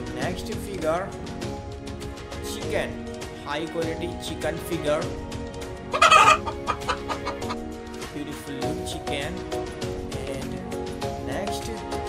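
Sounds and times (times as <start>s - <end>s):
background music: 0.0s - 12.0s
hen clucking: 5.9s - 7.6s.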